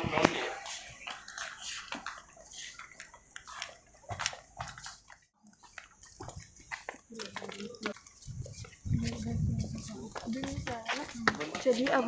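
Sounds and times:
footsteps: 0.0s - 12.0s.

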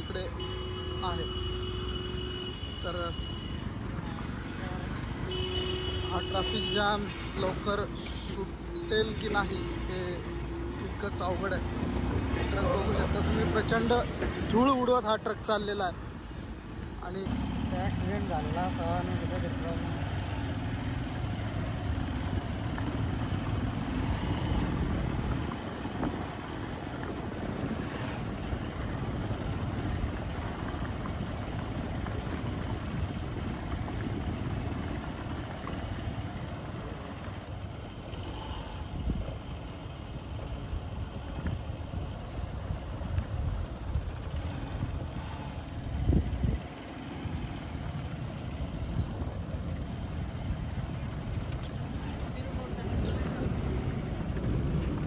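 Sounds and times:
truck and bus engines idling: 0.0s - 55.0s.

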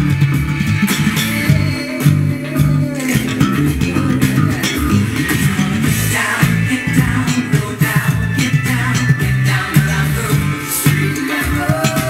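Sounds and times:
funk backing track: 0.0s - 12.0s
slap bass notes: 0.0s - 12.0s.

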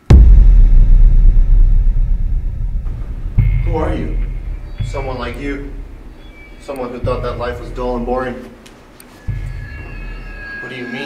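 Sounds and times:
deep rumble: 0.0s - 8.5s.

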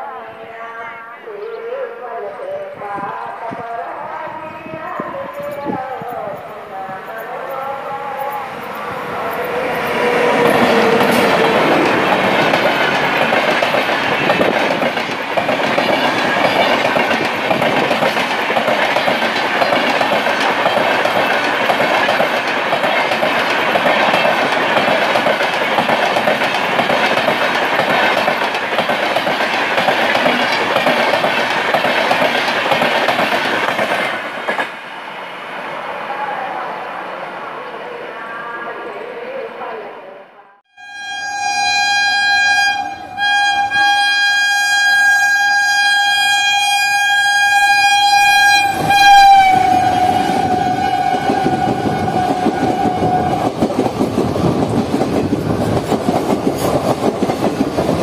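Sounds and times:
train passing at speed: 2.7s - 40.5s, 42.2s - 58.0s
wheels clacking over rail joints: 9.4s - 34.7s.

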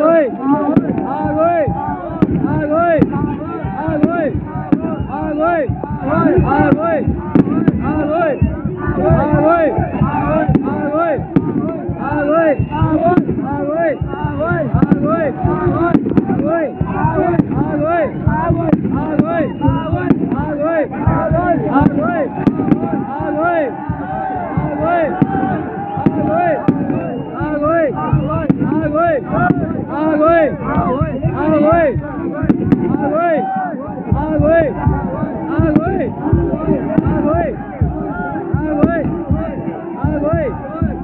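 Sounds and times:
crowd shouting: 0.0s - 41.0s
firecrackers banging: 0.0s - 41.0s.

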